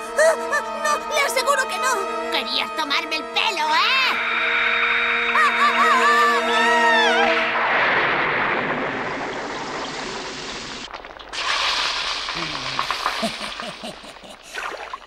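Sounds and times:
girl screaming: 0:05.3 - 0:07.5
bubbling with gurgling pops: 0:08.0 - 0:15.0.

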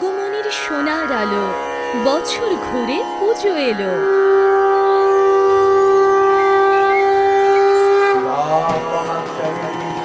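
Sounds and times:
wind instrument long note: 0:00.0 - 0:10.0.

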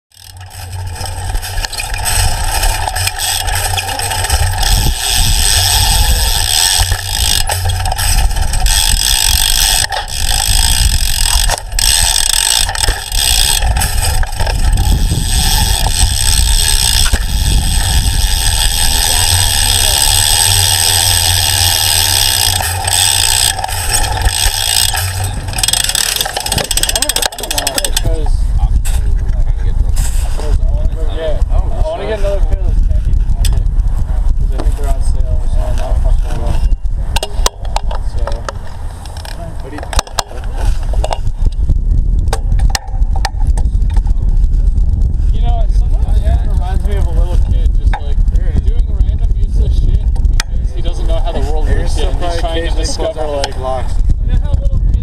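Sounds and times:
bike rolling over concrete: 0:00.1 - 0:55.0
wind buffeting camera: 0:00.1 - 0:55.0
muffled voices: 0:02.0 - 0:17.0, 0:17.7 - 0:38.6, 0:45.3 - 0:55.0.

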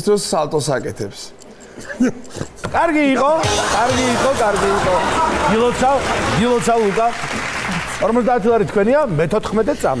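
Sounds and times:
audience applause: 0:03.4 - 0:08.4.

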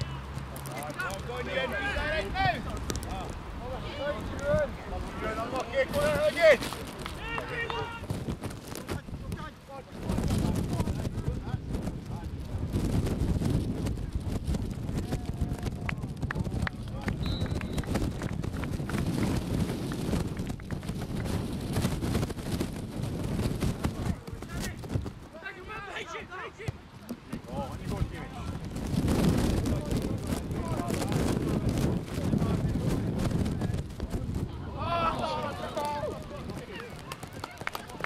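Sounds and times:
players shouting: 0:01.1 - 0:08.1, 0:25.4 - 0:26.8, 0:34.6 - 0:38.0
low microphone rumble: 0:09.9 - 0:25.2, 0:27.4 - 0:37.1.

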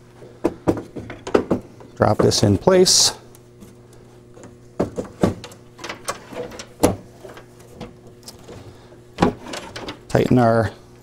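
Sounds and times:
wooden panel knocks and clunks: 0:00.4 - 0:02.4, 0:04.8 - 0:06.0.

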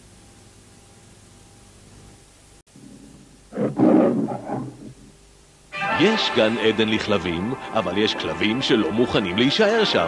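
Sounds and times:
faint tape hiss: 0:00.0 - 0:10.0
lion roar: 0:02.8 - 0:05.2.

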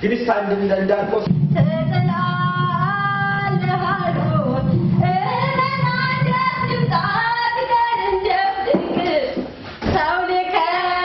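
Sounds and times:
woman singing long held notes: 0:01.5 - 0:09.4.

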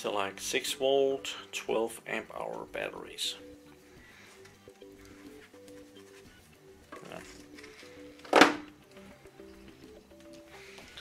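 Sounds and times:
quiet melodic background music: 0:00.0 - 0:11.0.

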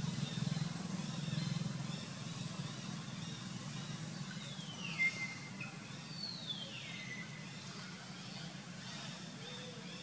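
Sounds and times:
steady low hum: 0:00.0 - 0:10.0
high whistled calls gliding down: 0:04.4 - 0:07.6.

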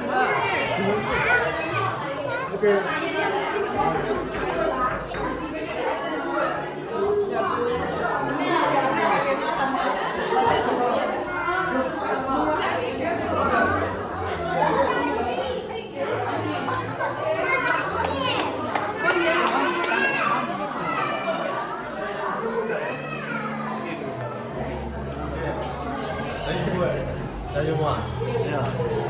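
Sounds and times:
children and adults chattering: 0:00.0 - 0:29.0.

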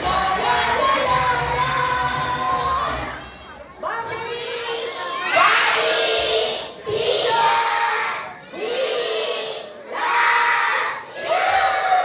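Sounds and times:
children shouting together: 0:04.4 - 0:12.0.

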